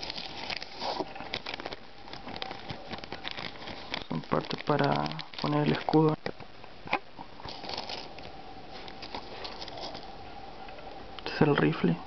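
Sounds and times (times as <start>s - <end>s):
plastic parts rustling and crackling: 0.0s - 10.1s.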